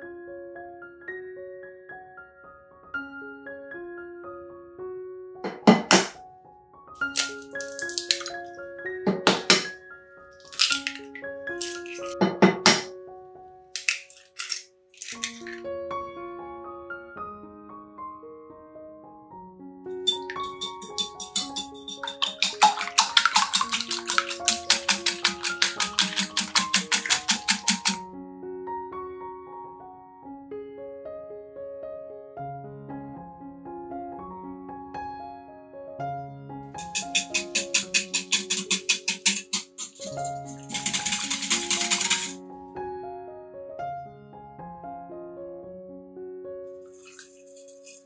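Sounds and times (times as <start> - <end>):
soft piano music: 0.0 - 13.8, 14.7 - 38.5, 40.1 - 48.0
whisk beating eggs in glass bowl: 7.1 - 8.3, 10.5 - 12.2, 20.1 - 28.0, 36.8 - 42.4, 47.0 - 48.0.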